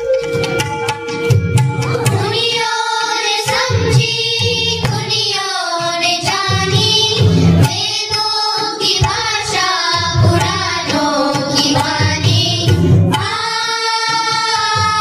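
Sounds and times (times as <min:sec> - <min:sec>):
instrumental accompaniment: 0:00.0 - 0:15.0
children singing: 0:01.8 - 0:15.0.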